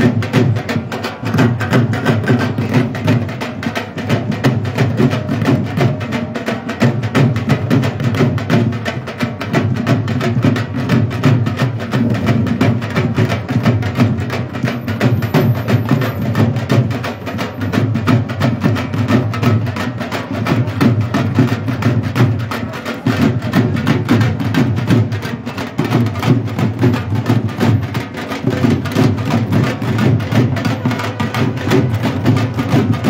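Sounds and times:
group of drums playing fast: 0.0s - 33.0s.

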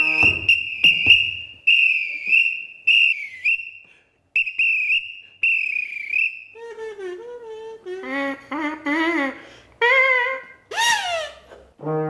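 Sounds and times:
sports whistle blasts: 0.0s - 6.5s.

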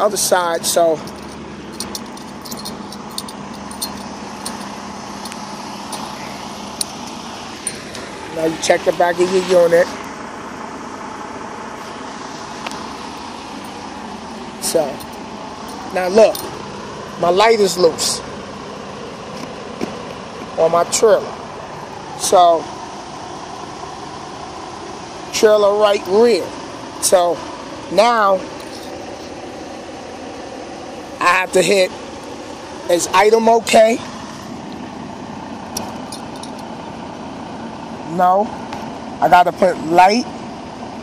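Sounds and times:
truck engine idling: 0.0s - 41.0s.

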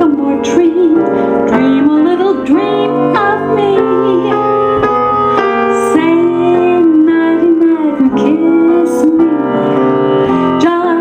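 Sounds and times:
grand piano: 0.0s - 11.0s.

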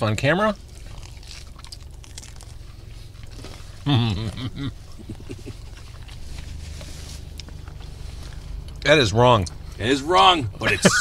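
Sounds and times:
man chewing pizza: 0.0s - 9.8s
low steady hum: 0.0s - 11.0s.

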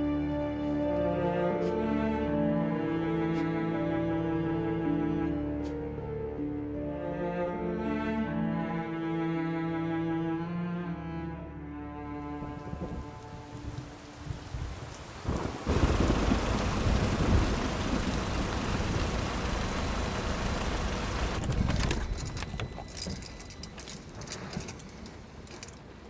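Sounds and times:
rain: 12.4s - 25.8s
rolling thunder: 13.7s - 19.7s.

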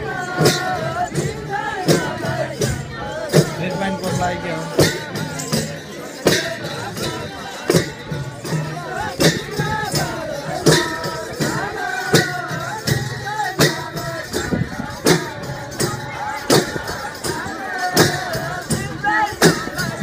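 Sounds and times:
drums: 0.0s - 20.0s
men singing: 0.0s - 20.0s
hand cymbals clashing: 0.3s - 20.0s.

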